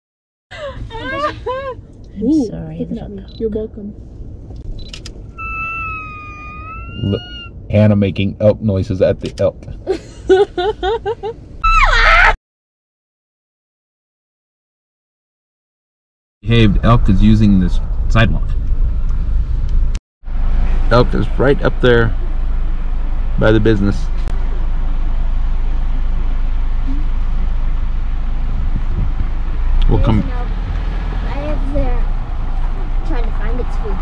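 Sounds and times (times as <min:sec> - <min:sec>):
car engine rumble and road noise: 0:00.5 - 0:12.4, 0:16.4 - 0:34.0
person imitating elk call: 0:05.4 - 0:07.5.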